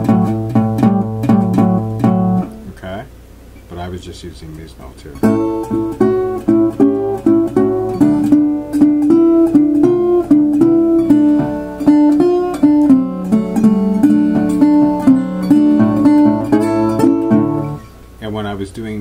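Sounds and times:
fingerpicked resonator guitar blues: 0.0 - 2.8, 5.2 - 18.2.

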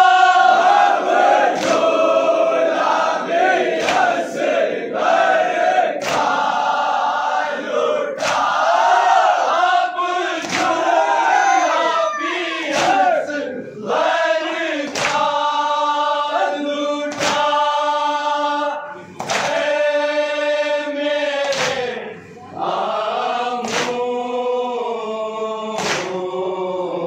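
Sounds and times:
men chanting a lament in unison: 0.0 - 27.0.

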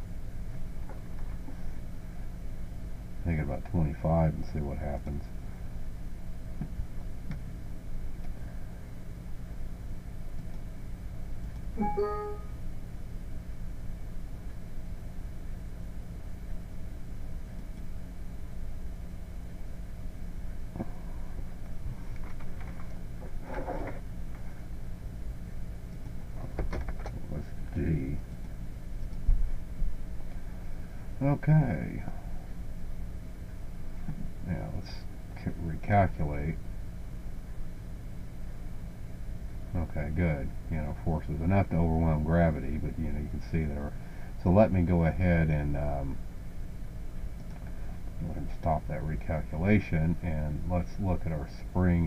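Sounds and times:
low electrical hum: 0.0 - 52.0.

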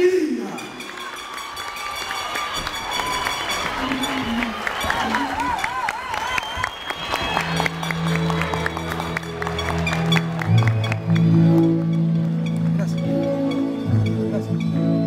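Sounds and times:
audience applauding: 0.4 - 13.1.

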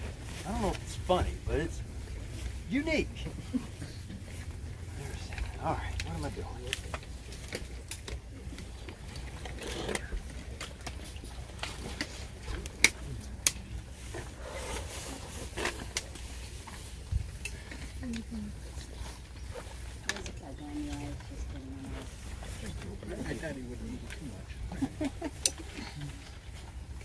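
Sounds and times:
steady low rumble: 0.0 - 9.4
outdoor crowd murmur: 0.0 - 27.0.

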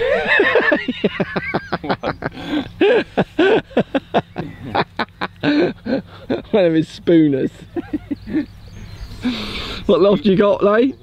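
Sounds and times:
men laughing: 0.0 - 10.3.

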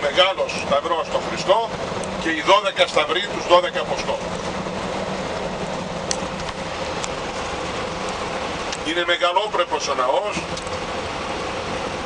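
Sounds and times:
engine and road noise inside coach: 0.0 - 12.0.

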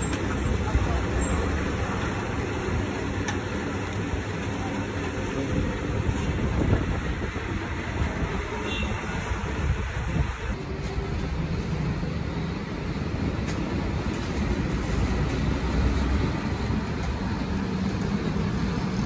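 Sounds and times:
traffic rumble: 0.0 - 19.0.

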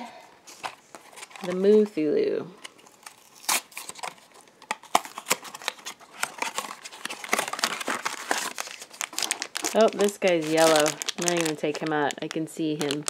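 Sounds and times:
crinkling card and plastic: 0.4 - 13.0.

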